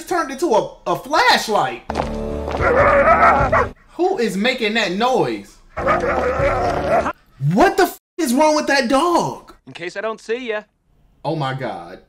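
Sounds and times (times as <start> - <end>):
dog howling: 2.5 - 3.8, 5.8 - 7.2.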